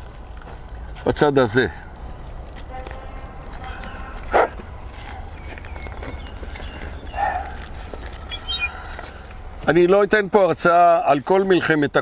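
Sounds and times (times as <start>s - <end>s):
steady low rumble: 0.0s - 10.4s
short animal calls: 8.2s - 9.3s.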